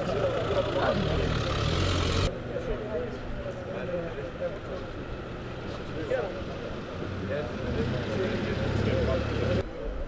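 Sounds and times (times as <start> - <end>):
car driving past: 0.0 - 2.3
tyre noise on road: 0.0 - 9.8.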